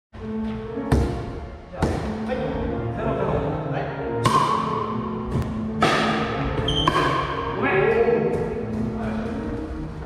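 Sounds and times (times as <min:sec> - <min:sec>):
background music: 0:00.2 - 0:10.0
ball bouncing on wooden floor: 0:05.3 - 0:07.4.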